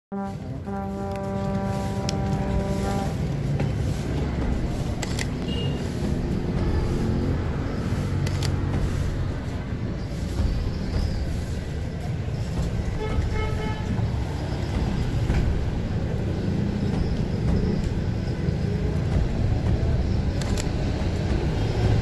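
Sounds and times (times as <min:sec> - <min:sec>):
rumble of motor vehicles: 0:00.1 - 0:22.0
sharp clicks: 0:05.0 - 0:05.8, 0:08.2 - 0:08.8, 0:20.2 - 0:21.3
car horn toot: 0:05.4 - 0:05.8.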